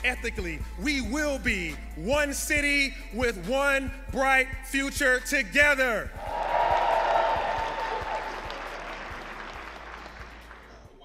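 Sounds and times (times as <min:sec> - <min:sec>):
audience applauding: 0:06.2 - 0:11.0.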